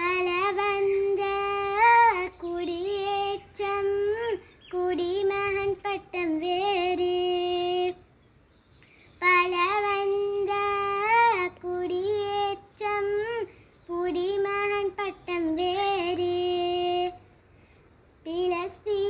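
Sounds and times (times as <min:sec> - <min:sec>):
girl singing unaccompanied: 0:00.0 - 0:17.4, 0:18.2 - 0:19.0.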